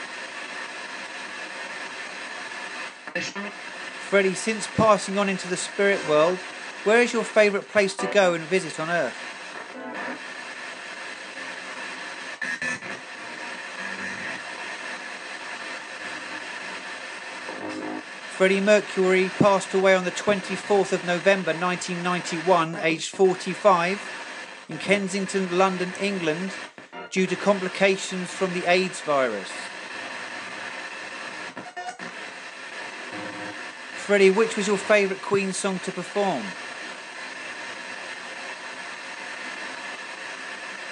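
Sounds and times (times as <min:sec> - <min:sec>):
radio static hiss: 0:00.0 - 0:40.9.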